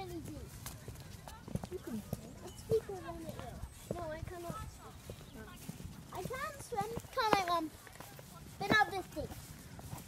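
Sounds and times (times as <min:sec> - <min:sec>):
footsteps on stone paving: 0:00.0 - 0:10.0.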